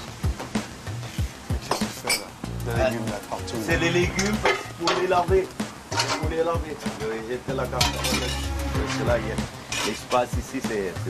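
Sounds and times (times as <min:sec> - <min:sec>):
spoon and pans clinking: 0:01.6 - 0:02.3, 0:04.1 - 0:05.3, 0:05.9 - 0:06.4, 0:07.7 - 0:10.3
man talking: 0:02.0 - 0:11.0.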